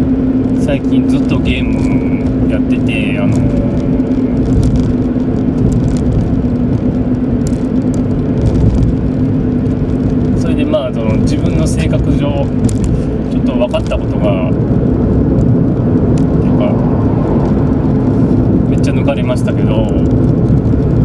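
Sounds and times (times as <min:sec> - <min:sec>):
car engine and tyres droning: 0:00.0 - 0:21.0
constant low hum: 0:00.0 - 0:21.0.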